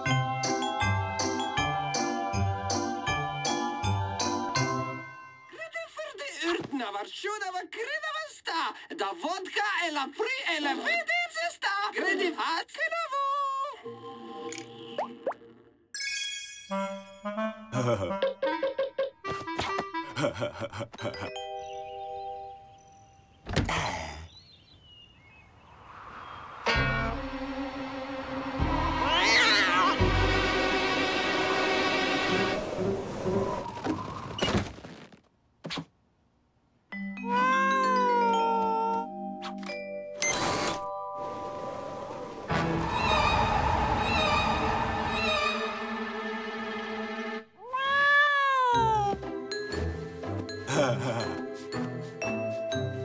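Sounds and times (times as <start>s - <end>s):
orchestral cartoon music: 0.0s - 5.5s, 16.0s - 20.3s, 26.7s - 33.4s, 37.0s - 47.5s, 48.7s - 53.0s
cartoon cat meow-like call: 29.1s - 30.0s, 37.2s - 39.1s, 47.6s - 49.2s.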